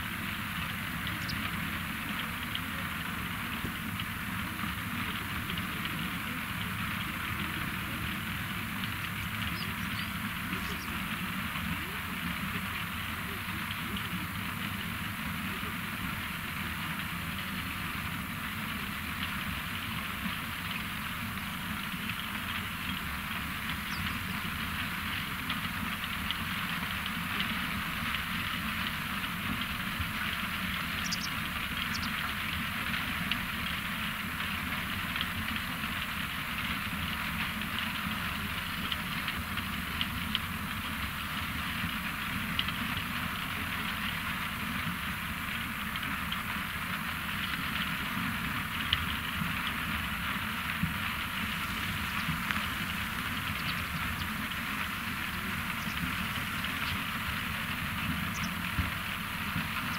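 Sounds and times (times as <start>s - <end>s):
diesel engine drone: 0.0s - 59.9s.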